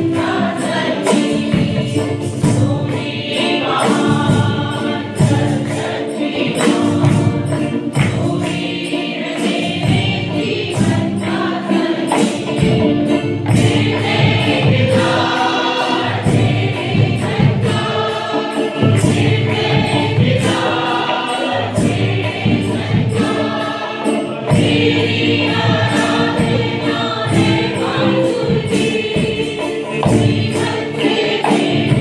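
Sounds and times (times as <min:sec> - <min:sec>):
choir singing a worship song: 0:00.0 - 0:32.0
steady percussion beat: 0:00.0 - 0:32.0.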